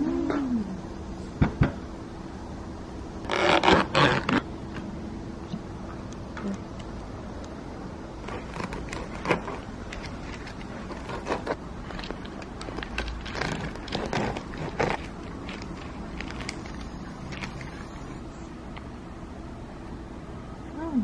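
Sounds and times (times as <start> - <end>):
bread knife sawing crusty bread: 8.2 - 9.7, 10.8 - 11.6, 13.4 - 15.2
paper rustling: 8.2 - 18.1.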